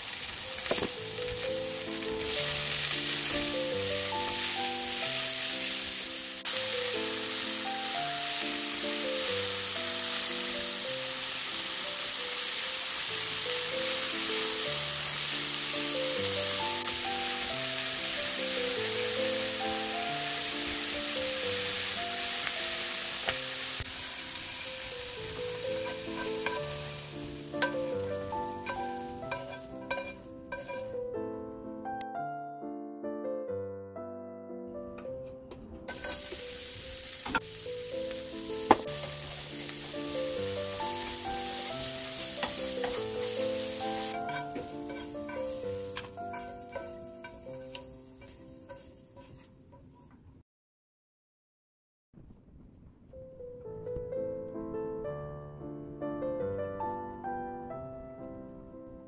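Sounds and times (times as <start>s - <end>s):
peppers sizzling in hot oil: 0.0s - 31.2s, 35.8s - 50.0s
soft piano music: 0.0s - 49.9s, 53.1s - 59.0s
chopsticks stirring in pan: 7.8s - 31.1s, 35.9s - 50.2s
pan knocking: 23.2s - 31.1s, 35.4s - 36.6s, 38.6s - 50.0s.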